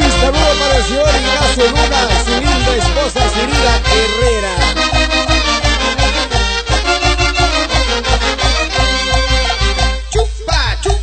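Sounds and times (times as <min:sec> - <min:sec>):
latin dance music: 0:00.0 - 0:11.0.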